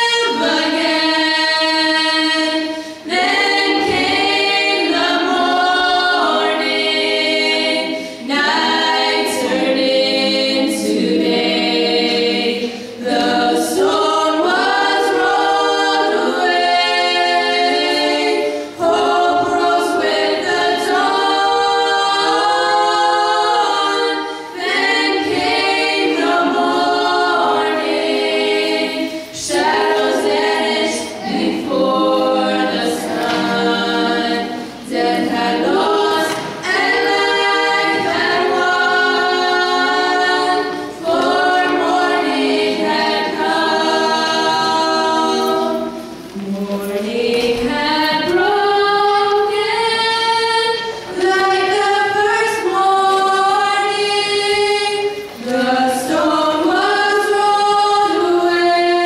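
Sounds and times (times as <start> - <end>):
girls singing a cappella harmony: 0.0 - 59.0.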